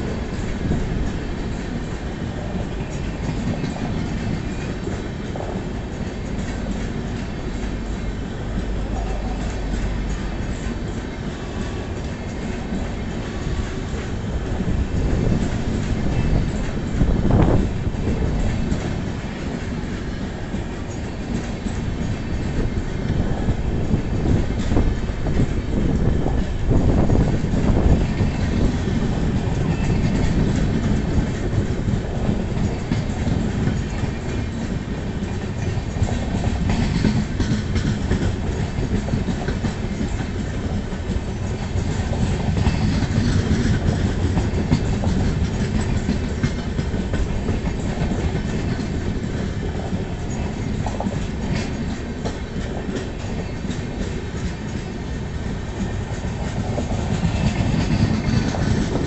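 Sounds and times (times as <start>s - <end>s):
train coaches rolling past: 0.0s - 59.0s
wheels clacking over rail joints: 0.0s - 59.0s.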